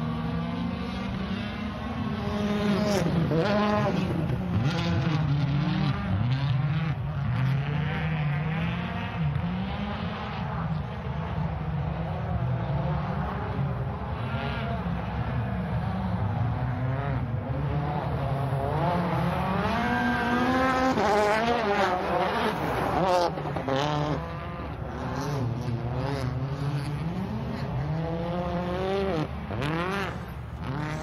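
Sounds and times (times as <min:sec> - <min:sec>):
rally car engine revving: 0:00.0 - 0:31.0.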